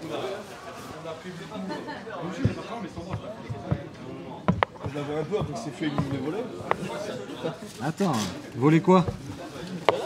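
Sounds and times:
statue parts knocking on table: 0:02.4 - 0:07.1, 0:09.0 - 0:09.3.

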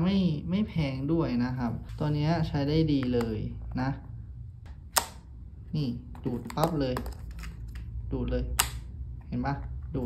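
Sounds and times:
stylus snapping magnetically click: 0:04.7 - 0:05.3, 0:08.5 - 0:09.0.

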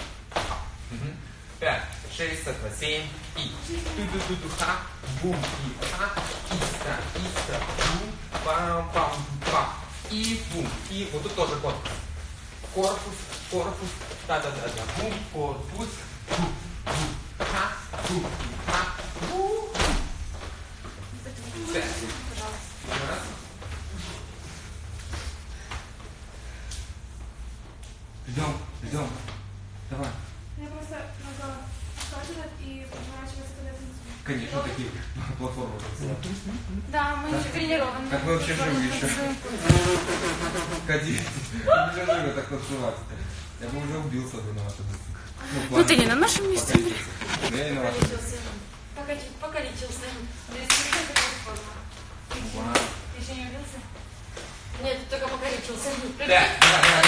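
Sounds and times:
low room rumble: 0:00.0 - 0:57.0
sharp hand claps: 0:50.6 - 0:51.4, 0:56.6 - 0:57.0.

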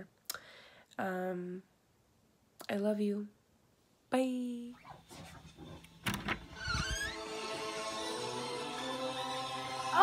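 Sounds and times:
door hinges squeaking: 0:04.8 - 0:07.4
music playing: 0:06.5 - 0:10.0.

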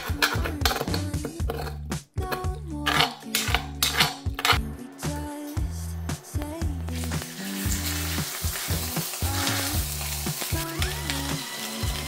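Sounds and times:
metal spoon scraping a pan: 0:00.0 - 0:04.7
background music: 0:00.0 - 0:12.0.

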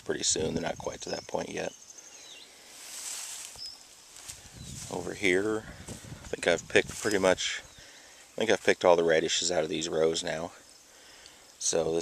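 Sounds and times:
faint bird chirp: 0:00.1 - 0:12.0
footsteps on dry straw: 0:02.7 - 0:07.6.

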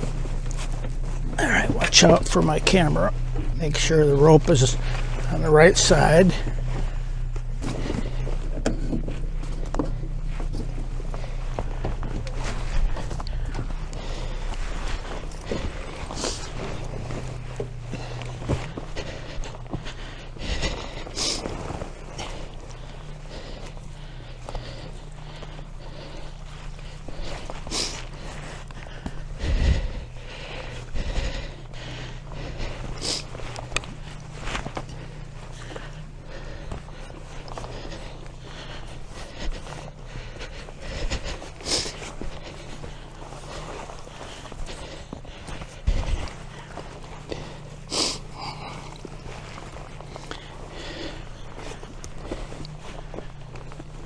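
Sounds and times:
rustling of shrubs: 0:00.0 - 0:54.0
steady low hum: 0:00.0 - 0:54.0
footsteps through shrubs: 0:09.2 - 0:54.0.

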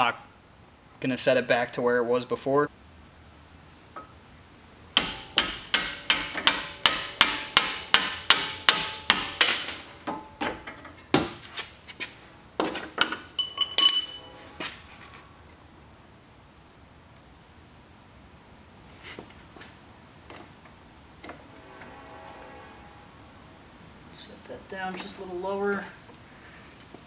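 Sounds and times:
hammer striking metal bolts: 0:05.0 - 0:11.4, 0:13.0 - 0:14.4.

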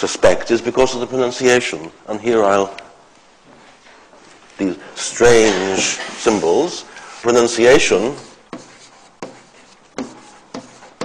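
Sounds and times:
pen scratching on paper: 0:08.2 - 0:11.0.

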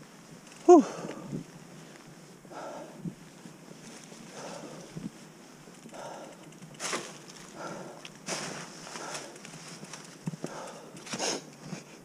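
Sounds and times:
mountain bike on dirt trail: 0:00.0 - 0:12.0
rider breathing hard: 0:02.4 - 0:03.3, 0:04.2 - 0:12.0.

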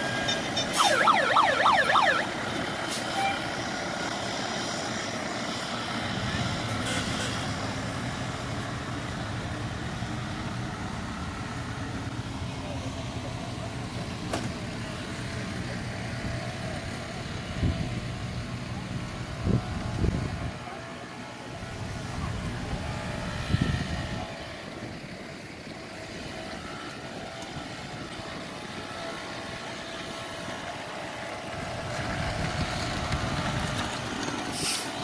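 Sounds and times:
fire engine diesel engine rumbling: 0:00.0 - 0:35.0.

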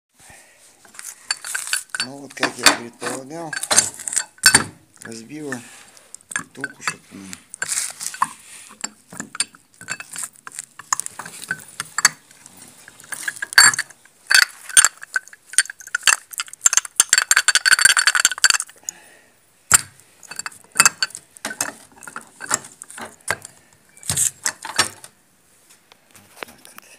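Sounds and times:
metal clicking and rattling: 0:00.9 - 0:18.9, 0:19.7 - 0:25.1.

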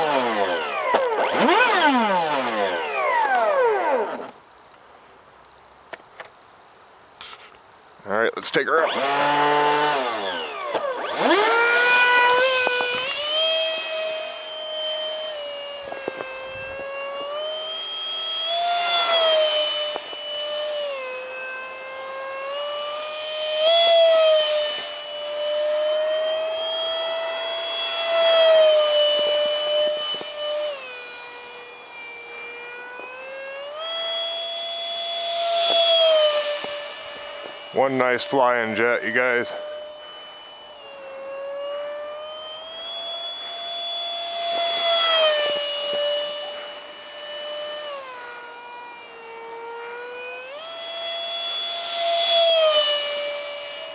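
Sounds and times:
electric ducted fan jet whining: 0:00.0 - 0:53.9.

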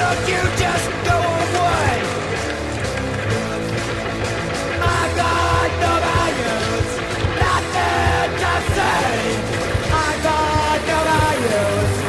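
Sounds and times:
rock music with shouted singing: 0:00.0 - 0:12.0.

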